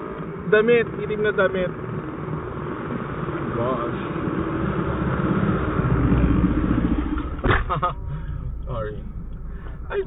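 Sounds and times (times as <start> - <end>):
passing vehicle rumble: 0.0 - 10.0.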